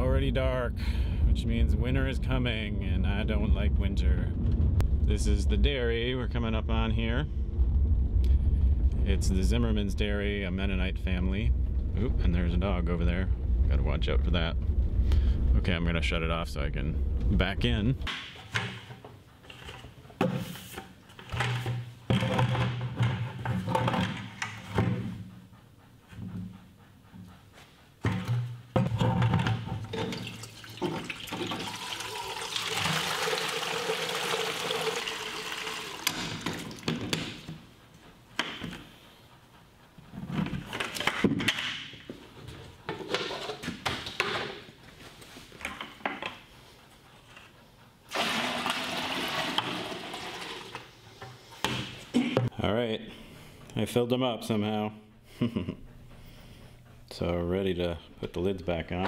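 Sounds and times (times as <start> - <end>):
plastic buckets knocking and scraping: 18.0 - 25.4, 28.0 - 37.7, 40.1 - 44.7, 48.1 - 52.6
milk rushing into buckets: 29.4 - 37.5, 48.1 - 50.9.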